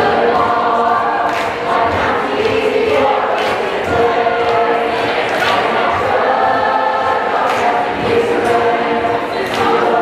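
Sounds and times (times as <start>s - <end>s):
choir singing long notes: 0.0s - 10.0s.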